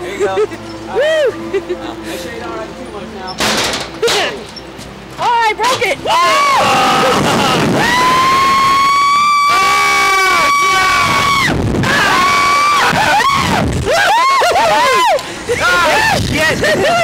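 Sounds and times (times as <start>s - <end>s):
laughing whoops: 0.4s - 1.8s, 6.2s - 17.0s
riders screaming: 6.0s - 17.0s.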